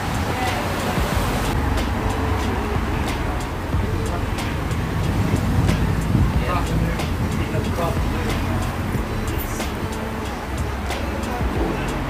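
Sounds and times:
indistinct voices: 0:00.0 - 0:12.0
low rumble of street traffic: 0:00.0 - 0:12.0.

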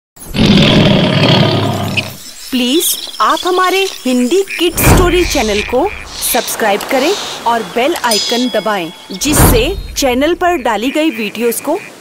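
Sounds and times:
tiger roaring: 0:00.3 - 0:02.2.

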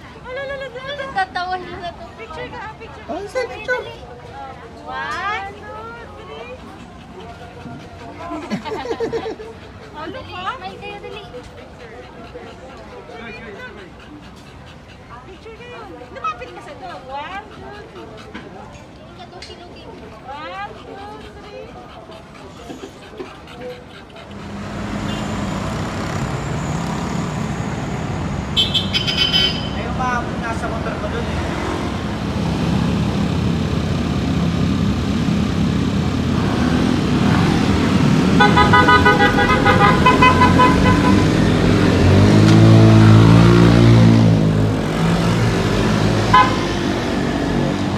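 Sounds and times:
traffic engine and road noise: 0:00.0 - 0:47.9
motor scooters riding past: 0:24.2 - 0:47.9
horn beeping: 0:24.8 - 0:29.9, 0:38.3 - 0:41.7, 0:46.2 - 0:46.9
short horn beep: 0:28.6 - 0:29.8.

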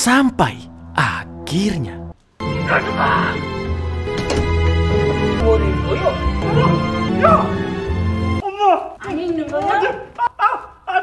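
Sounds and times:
tense music with low drone: 0:00.0 - 0:08.4.

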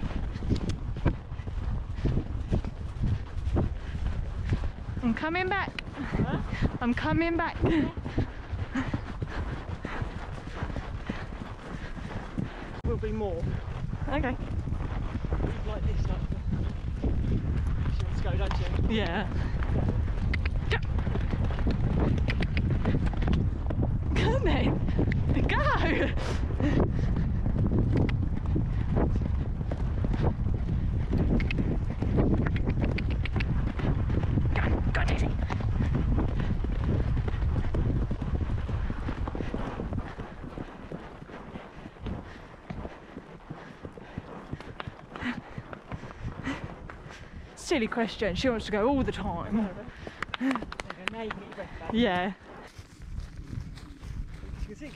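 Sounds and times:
horse hoofbeats on grass: 0:00.0 - 0:54.9
wind rumble on microphone: 0:00.0 - 0:54.9.

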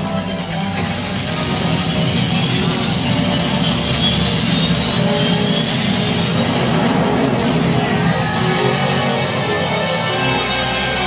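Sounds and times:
low rumble: 0:00.0 - 0:10.0
film music: 0:00.0 - 0:11.0
rising whooshing whine: 0:00.6 - 0:11.0.

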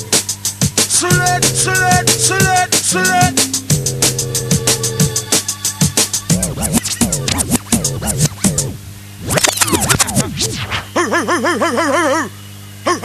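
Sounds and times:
drum and bass music: 0:00.0 - 0:11.0
record scratching: 0:01.1 - 0:02.8, 0:06.3 - 0:11.1
warbling tone: 0:06.3 - 0:11.0.

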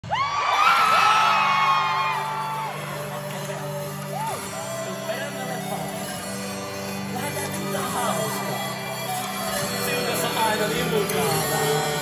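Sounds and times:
concert crowd screaming: 0:00.0 - 0:05.7.

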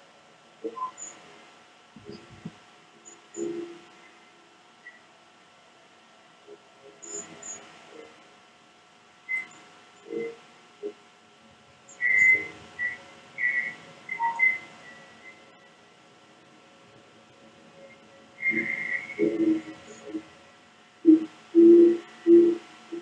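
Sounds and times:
faint steady hum: 0:00.0 - 0:23.0
short whistled notes: 0:12.0 - 0:15.4, 0:18.4 - 0:20.2.

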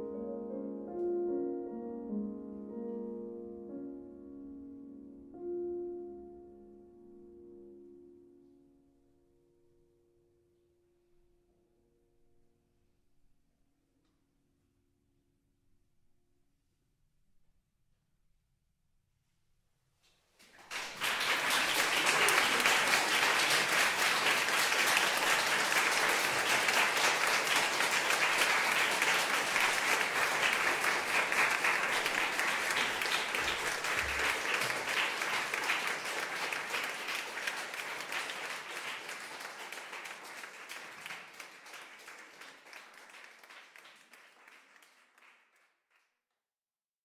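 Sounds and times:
audience applauding: 0:20.4 - 0:46.1.

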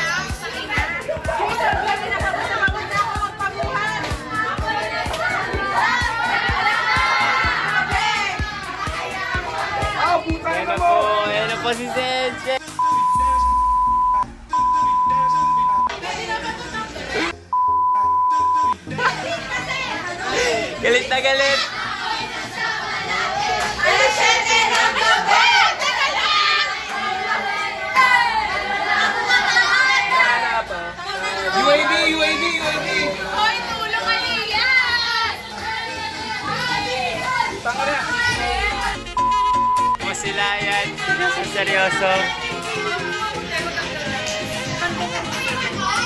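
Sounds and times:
young voices chattering: 0:00.0 - 0:12.9, 0:15.2 - 0:17.5, 0:18.8 - 0:46.0
faint music: 0:00.0 - 0:46.0
censor bleep: 0:12.8 - 0:15.9, 0:17.5 - 0:18.8, 0:39.0 - 0:40.0.

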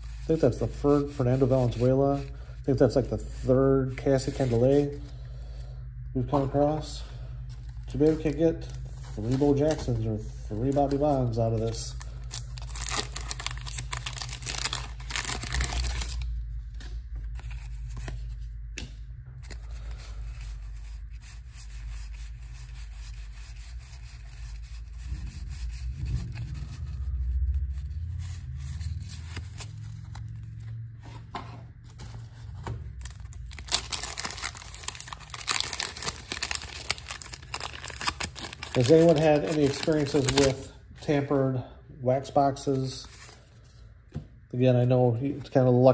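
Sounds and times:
cards being handled: 0:07.4 - 0:40.7
wax paper wrapper tearing: 0:10.6 - 0:16.3, 0:32.9 - 0:40.7.

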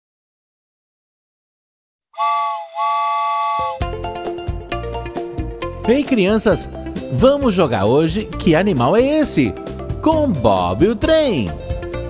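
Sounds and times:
train whistle toots: 0:02.2 - 0:03.8
music: 0:03.6 - 0:12.0.

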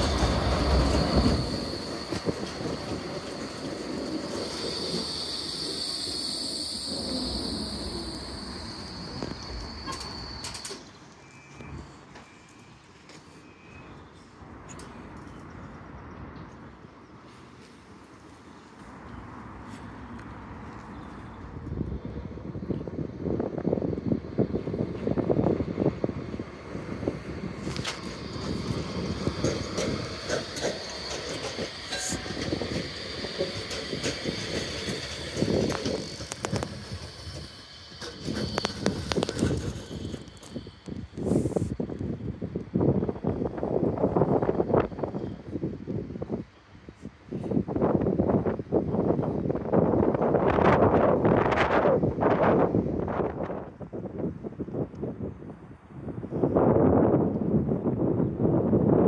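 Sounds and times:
tram wheel and track noise: 0:00.0 - 0:59.0
tram whine: 0:00.0 - 0:59.0.

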